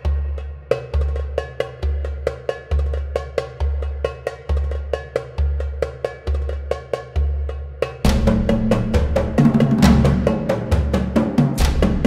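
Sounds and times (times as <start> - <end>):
clicky percussive beat: 0.0 - 12.0.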